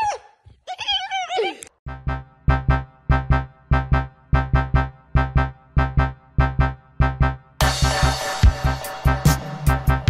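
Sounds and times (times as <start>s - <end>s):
keyboard and bass music: 1.8s - 10.0s.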